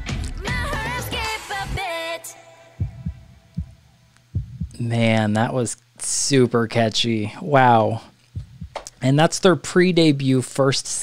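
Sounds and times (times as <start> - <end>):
pop song singing: 0.0 - 3.3
faint steady hum: 1.6 - 11.0
heartbeat thumps: 2.8 - 4.9, 8.3 - 9.0.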